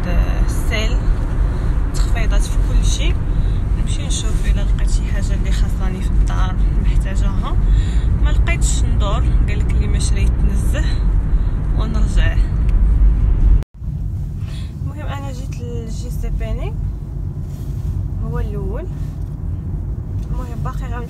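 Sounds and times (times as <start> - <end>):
woman talking: 0.0 - 1.0, 2.0 - 11.0, 11.8 - 12.5, 14.8 - 16.8, 18.2 - 19.1, 20.2 - 21.0
car cabin rumble: 0.0 - 21.0.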